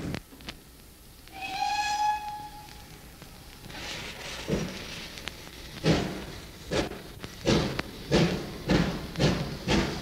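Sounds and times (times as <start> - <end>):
train whistle: 1.3 - 2.9.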